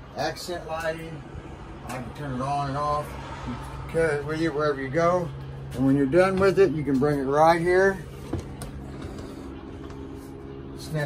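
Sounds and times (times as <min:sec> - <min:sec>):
low mechanical hum: 0:00.0 - 0:11.0.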